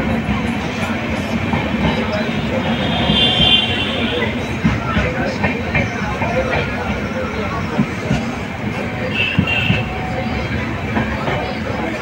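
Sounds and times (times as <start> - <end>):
train rumbling on track: 0.0 - 12.0
train wheels knocking: 0.0 - 12.0.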